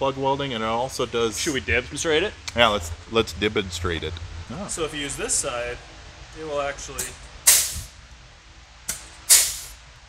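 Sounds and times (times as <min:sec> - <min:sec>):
pneumatic tool snap: 0:07.0 - 0:07.9, 0:08.9 - 0:09.8
hissing exhaust air: 0:07.0 - 0:08.0, 0:08.9 - 0:09.9.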